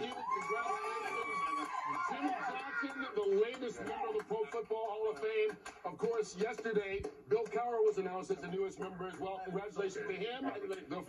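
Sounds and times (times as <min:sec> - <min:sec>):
men cheering: 0:00.0 - 0:05.0.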